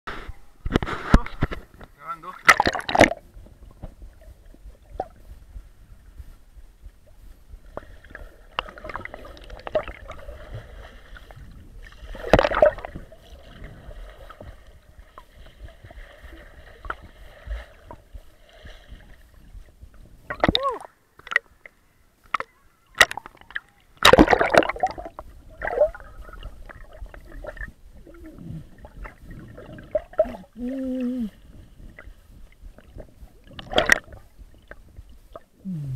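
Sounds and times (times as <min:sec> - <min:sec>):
water splashing and sloshing: 0:00.2 - 0:35.6
muffled underwater sound: 0:21.7 - 0:35.9.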